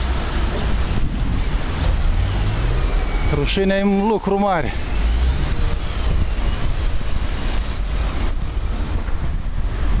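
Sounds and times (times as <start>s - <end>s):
rumbling city traffic: 0.0s - 10.0s.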